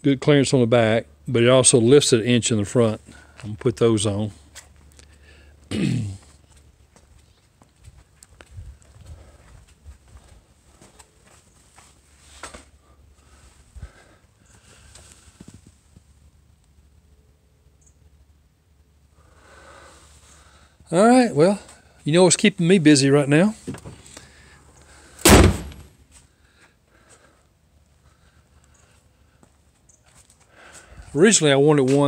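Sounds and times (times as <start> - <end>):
man clearing his throat: 5.7 - 6.4
footsteps: 6.2 - 13.6, 29.4 - 32.0.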